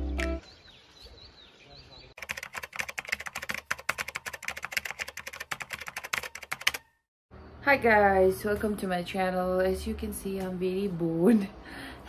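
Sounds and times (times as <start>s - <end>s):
keyboard typing clicks: 2.2s - 6.9s.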